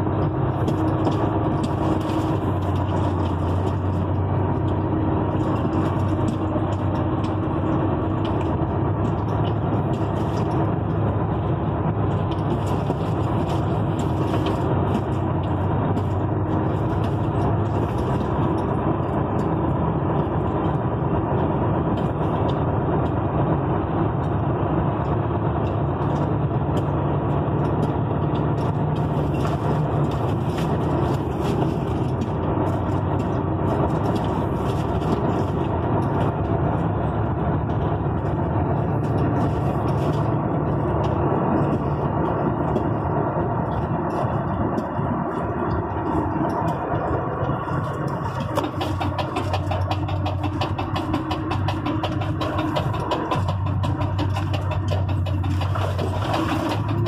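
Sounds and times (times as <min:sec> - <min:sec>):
engine and road noise in a cab: 0:00.0 - 0:57.0.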